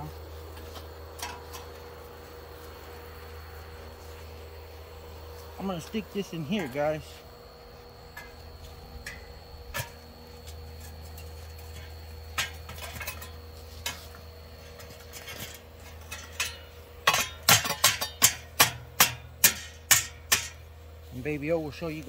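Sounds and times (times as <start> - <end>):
metal stand clanking on steel: 0.6 - 1.8, 8.1 - 10.1, 10.8 - 20.7.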